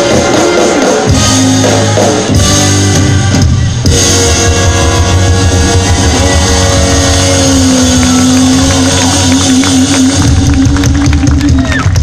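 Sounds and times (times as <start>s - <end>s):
live blues band playing loudly: 0.0s - 12.0s.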